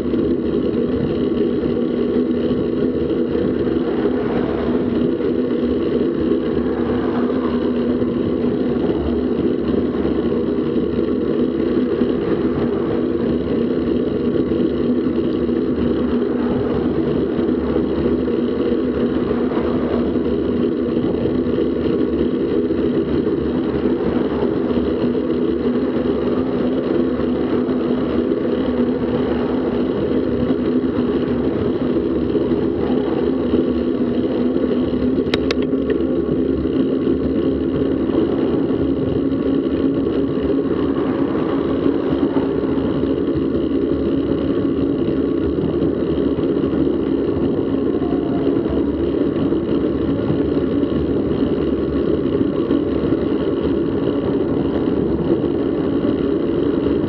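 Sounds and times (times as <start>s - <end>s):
passing cars: 0.0s - 57.0s
road noise: 0.0s - 57.0s
wind rush on microphone: 0.0s - 57.0s.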